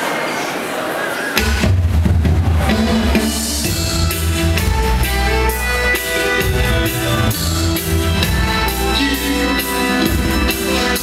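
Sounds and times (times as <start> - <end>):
crowd noise in a hall: 0.0 - 11.0
dub reggae music over loudspeakers: 1.4 - 11.0.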